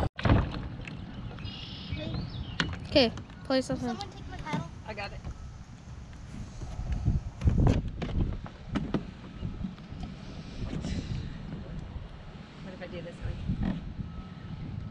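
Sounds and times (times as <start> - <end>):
wind rumble on microphone: 0.0 - 14.9.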